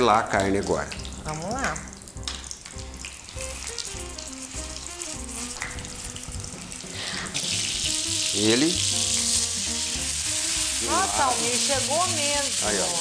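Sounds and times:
meat sizzling in frying pan: 0.0 - 13.0.

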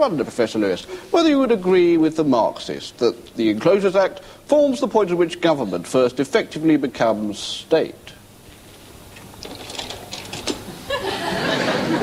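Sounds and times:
slide projector whirring: 0.0 - 12.0.

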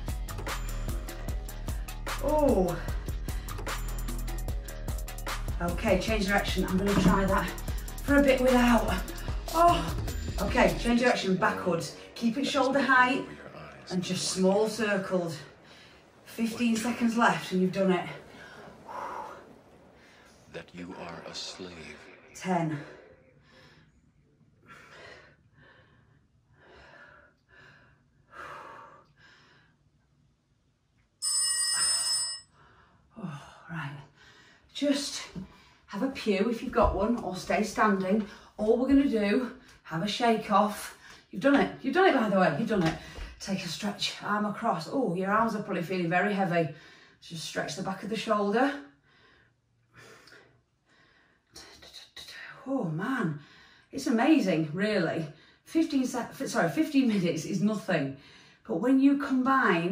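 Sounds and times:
bell-like timer tone: 31.2 - 32.5.

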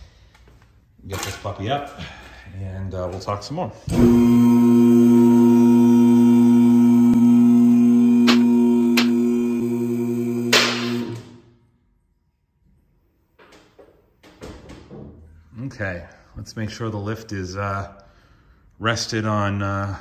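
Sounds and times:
hydraulic pump motor humming: 3.9 - 11.5.

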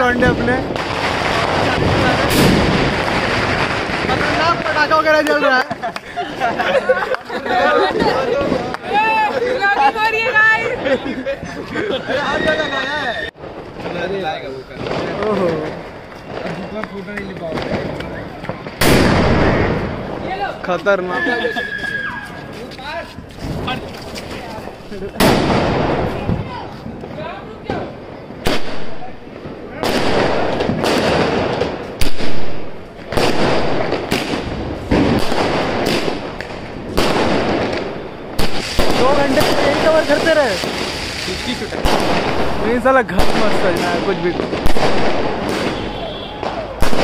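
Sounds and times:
firecracker bang with echo: 0.0 - 5.5, 13.4 - 20.5, 25.2 - 26.7, 27.7 - 47.0
voices: 45.4 - 47.0.

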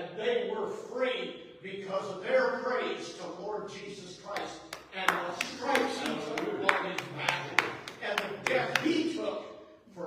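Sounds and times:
man's voice: 0.0 - 10.0
hand claps in steady rhythm: 4.2 - 9.2.

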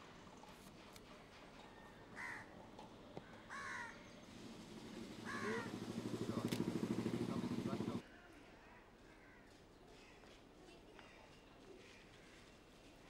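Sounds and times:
crows cawing: 2.1 - 2.6, 3.2 - 4.2, 5.1 - 6.0, 9.0 - 9.6.

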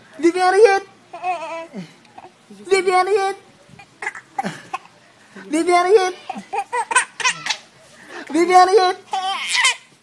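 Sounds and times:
baby laughing: 6.0 - 7.7, 9.0 - 9.8.

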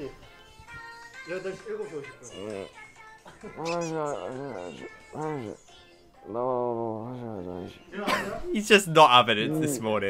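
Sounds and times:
man groaning: 9.3 - 10.0.

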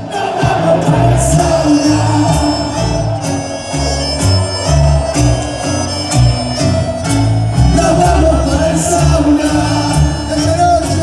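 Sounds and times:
accordion melody: 0.0 - 11.0
acoustic guitars: 0.0 - 11.0
live tango band: 0.0 - 11.0
low bass notes: 0.0 - 11.0.

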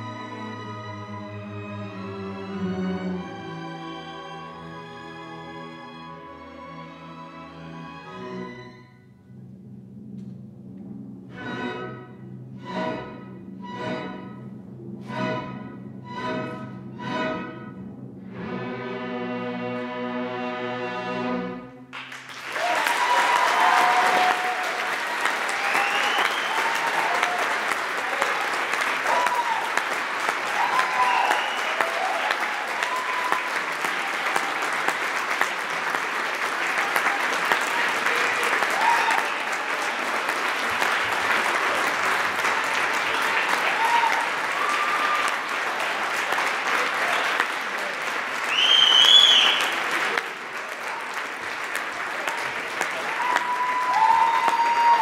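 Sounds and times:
audience applauding: 21.9 - 55.0
cheering shouts: 22.5 - 34.7, 36.7 - 40.0, 42.3 - 46.1, 52.0 - 55.0.

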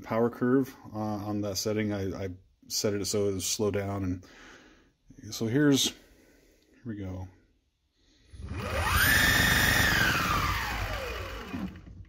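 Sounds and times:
electric motor whine: 8.3 - 12.0.

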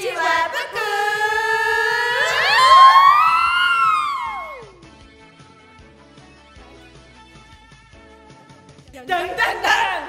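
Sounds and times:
cartoon theme song: 0.0 - 4.9.

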